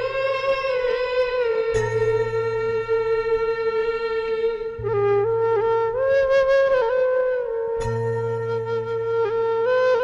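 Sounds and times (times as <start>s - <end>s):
low sustained tone: 0.0s - 10.0s
slow flute melody: 0.0s - 10.0s.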